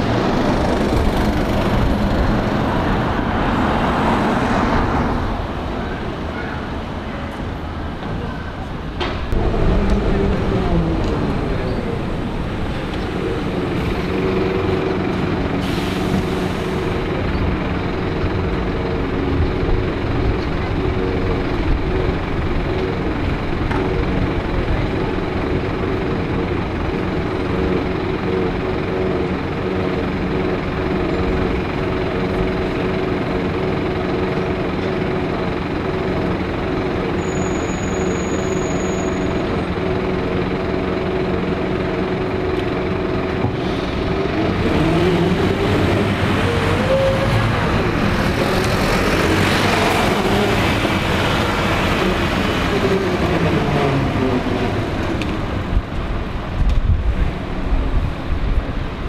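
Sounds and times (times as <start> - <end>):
bus diesel engine: 0.0 - 59.0.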